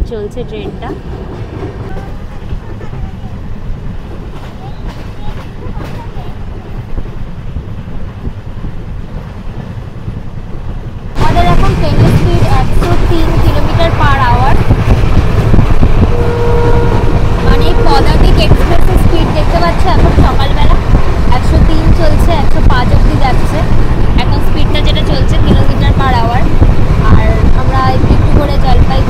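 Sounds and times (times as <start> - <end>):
train rumbling on track: 0.0 - 29.0.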